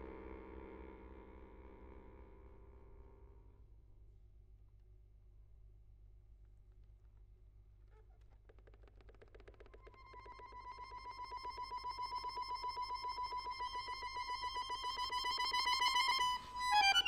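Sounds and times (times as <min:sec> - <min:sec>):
accordion pulsing high note: 0:10.7 - 0:17.0.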